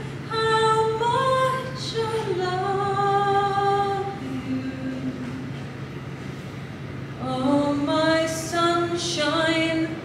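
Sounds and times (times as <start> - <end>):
woman singing a cappella: 0.0 - 5.6, 7.2 - 10.0.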